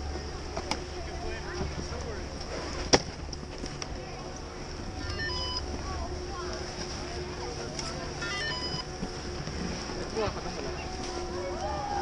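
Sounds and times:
ticket gate beeping: 5.1s - 5.6s, 8.2s - 8.8s.

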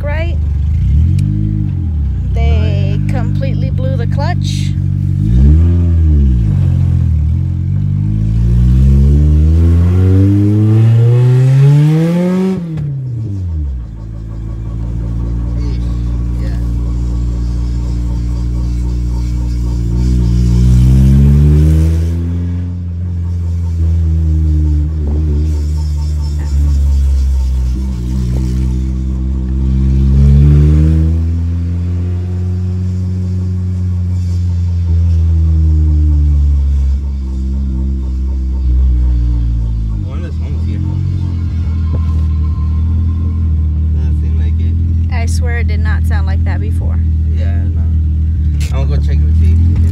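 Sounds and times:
car engine revving in cabin: 0.0s - 49.9s.

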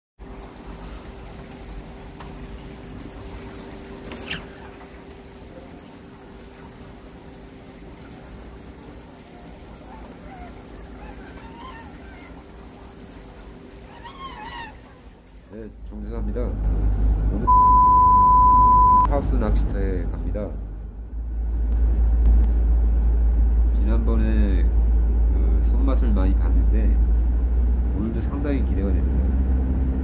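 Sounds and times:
low hum: 15.8s - 28.0s.

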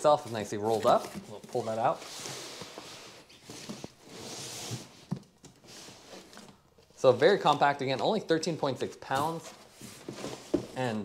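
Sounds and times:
material sliding out of cardboard box: 2.0s - 6.2s.

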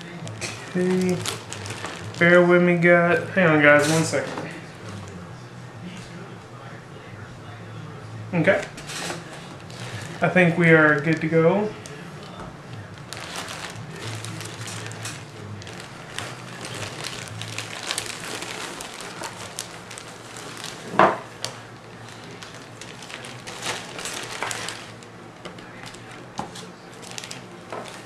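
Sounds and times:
packaging rustling and crinkling: 0.0s - 2.9s, 8.6s - 28.0s.

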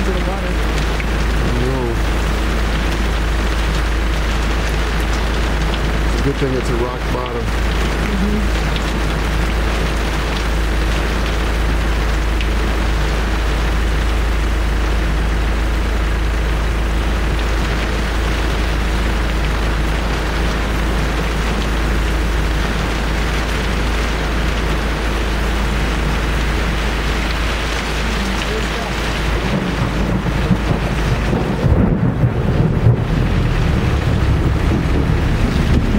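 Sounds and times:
engine running low: 0.0s - 35.9s
heavy rain on vehicle: 0.0s - 35.9s
vehicle rumbling over rough ground: 0.0s - 35.9s.

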